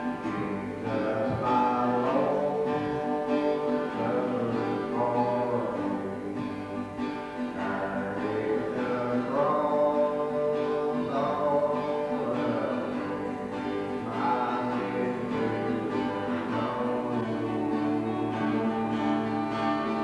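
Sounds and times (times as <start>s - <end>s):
acoustic guitars strumming: 0.0s - 20.0s
voices singing in harmony: 0.0s - 20.0s.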